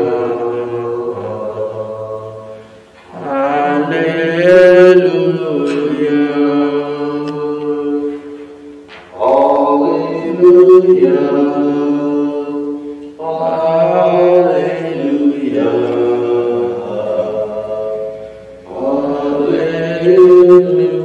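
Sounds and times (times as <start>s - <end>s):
person chanting slowly: 0.0s - 21.0s.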